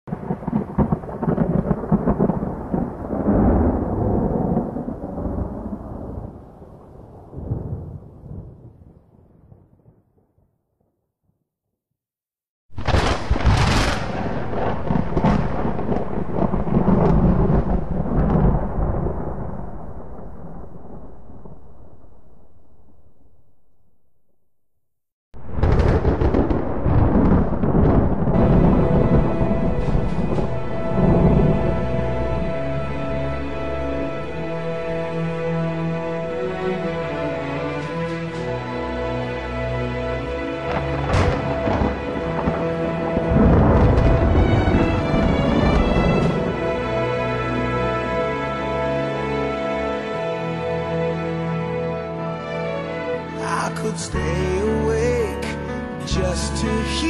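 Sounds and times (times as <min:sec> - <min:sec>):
thunderclap rumbling: 0:00.1 - 0:10.4, 0:12.7 - 0:23.3, 0:25.4 - 0:50.0.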